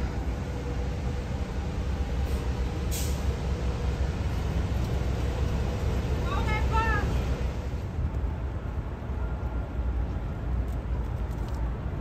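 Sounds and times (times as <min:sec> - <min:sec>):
traffic engines rumbling: 0:00.0 - 0:12.0.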